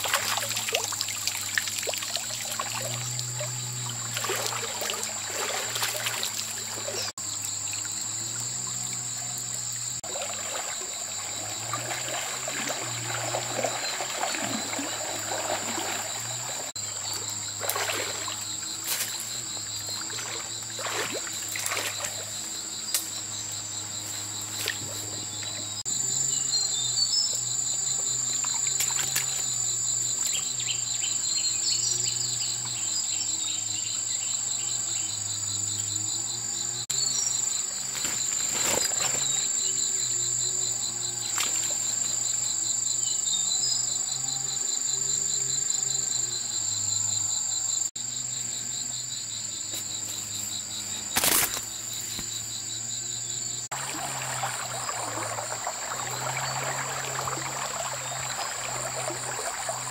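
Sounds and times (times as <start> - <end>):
insects chorus: 0.0 - 59.9.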